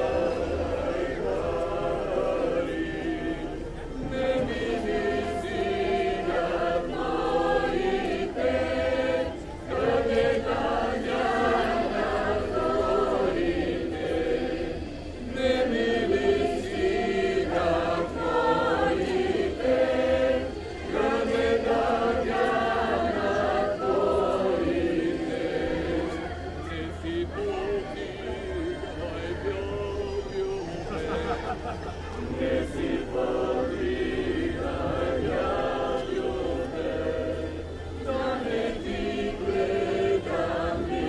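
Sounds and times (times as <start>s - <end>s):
group singing folk song: 0.0s - 41.0s.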